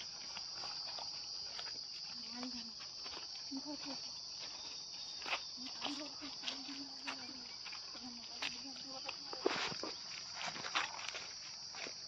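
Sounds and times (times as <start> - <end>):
crickets chirring: 0.0 - 12.0
footsteps on dry leaves: 0.0 - 12.0.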